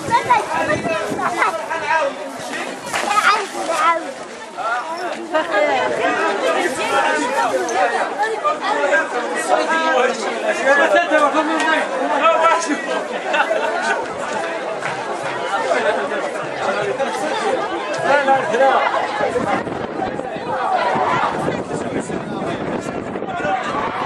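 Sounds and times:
crowd chatter: 0.0s - 24.0s.

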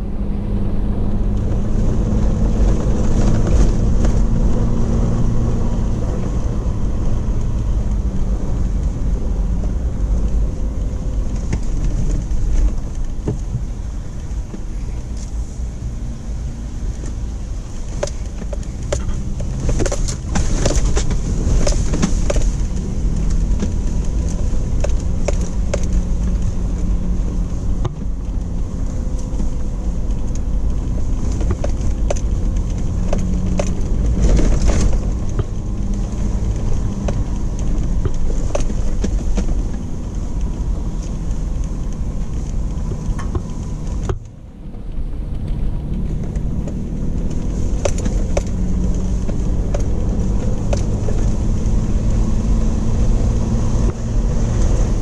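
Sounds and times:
tyre and road noise: 0.0s - 55.0s
vehicle engine running: 0.0s - 55.0s.

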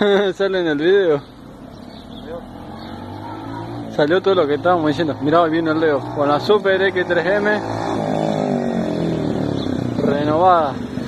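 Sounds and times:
motorcycle engine approaching: 0.0s - 11.0s.

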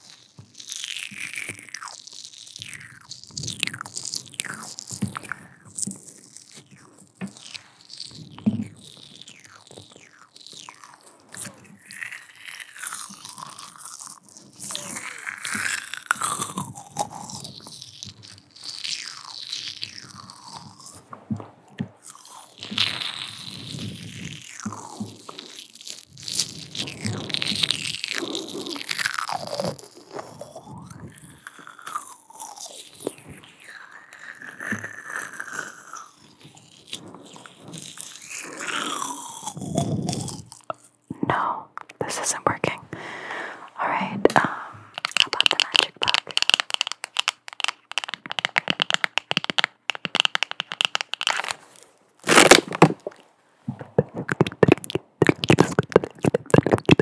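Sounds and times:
close mouth sounds: 0.0s - 57.0s
sharp clicks and taps: 45.0s - 51.6s, 53.8s - 57.0s.

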